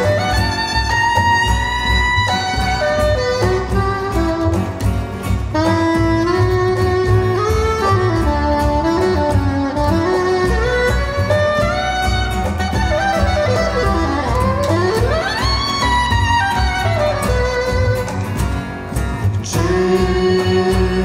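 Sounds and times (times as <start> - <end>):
soprano saxophone melody: 0.0 - 18.3
band accompaniment with bass: 0.0 - 21.0.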